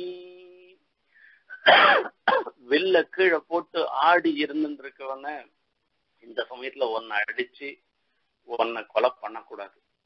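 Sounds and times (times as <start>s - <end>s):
man talking: 2.4s - 5.5s, 6.2s - 9.8s.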